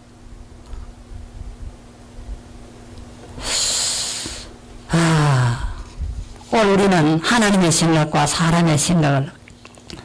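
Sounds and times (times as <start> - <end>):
man breathing in: 3.4 - 4.6.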